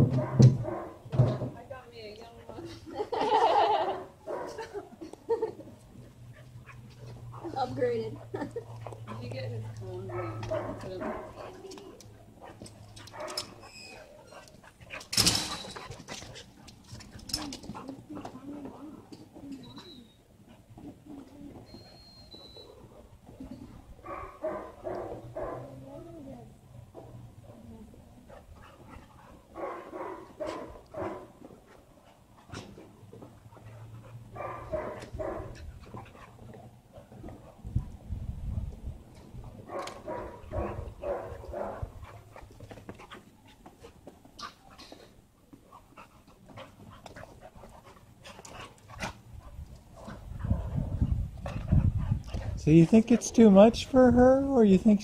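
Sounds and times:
dogs scuffling: 0:06.1 - 0:22.0, 0:38.7 - 0:50.7.

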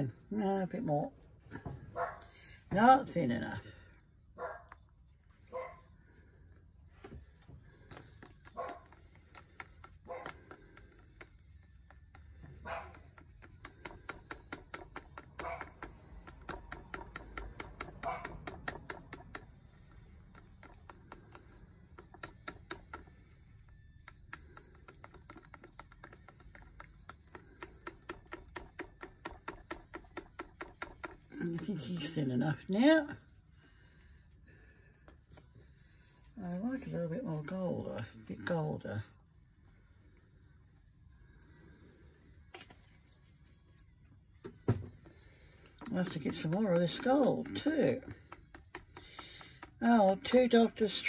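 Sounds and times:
paint being stirred in cup: 0:04.7 - 0:38.8, 0:39.7 - 0:51.0
stirrer clicking against cup: 0:07.6 - 0:32.5, 0:45.3 - 0:51.0.

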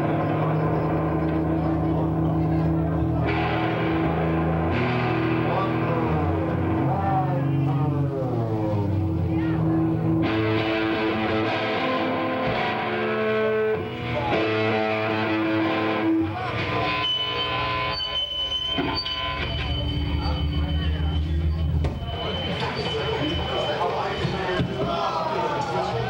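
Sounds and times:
electric guitar held notes: 0:00.0 - 0:23.4
low bass notes droning: 0:00.0 - 0:24.8
high feedback tone: 0:15.8 - 0:25.2.

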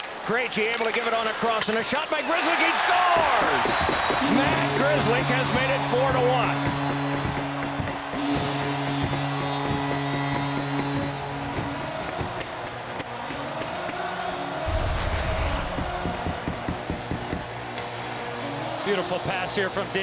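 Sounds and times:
crowd cheering: 0:02.1 - 0:19.2
arena music: 0:14.5 - 0:17.1.

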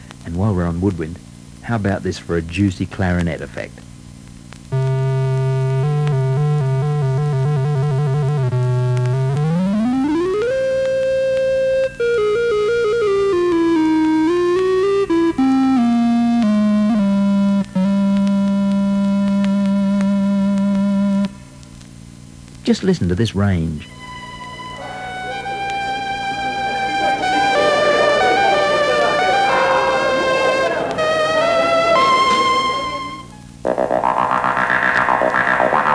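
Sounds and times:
synthesizer playing woodwind notes: 0:04.8 - 0:21.3, 0:23.8 - 0:35.9.

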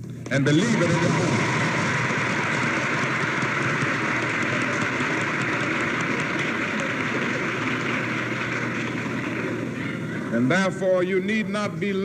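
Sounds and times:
audience applauding: 0:00.4 - 0:10.4.

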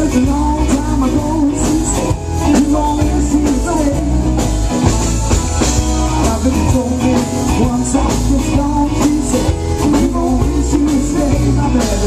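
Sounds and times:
bass guitar: 0:00.0 - 0:12.0
drum kit beat: 0:00.0 - 0:12.0
electric guitar: 0:00.0 - 0:12.0
man singing lead: 0:00.0 - 0:12.0.

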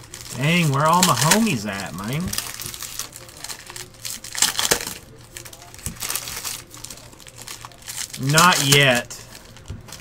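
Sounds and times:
foil wrappers crinkling: 0:00.0 - 0:10.0.

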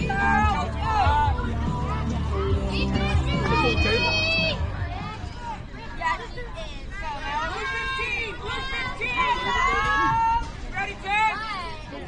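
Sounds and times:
girls shouting and chanting: 0:00.0 - 0:12.0.

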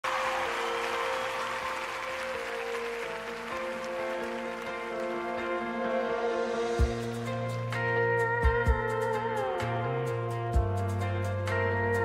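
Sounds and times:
audience applause: 0:00.0 - 0:05.9
live band playing slow chords: 0:01.8 - 0:12.0.

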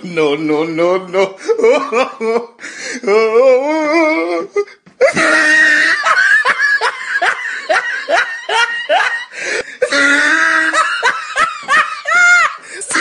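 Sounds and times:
person laughing hard: 0:01.4 - 0:13.0.

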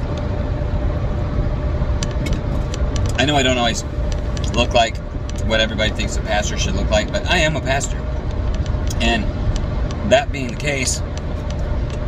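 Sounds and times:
car engine and road noise: 0:00.0 - 0:12.0
faint steady hum: 0:00.0 - 0:12.0.

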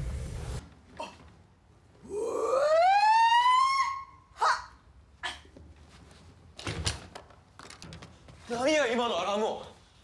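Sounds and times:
woman's siren-like wail: 0:02.2 - 0:04.4.

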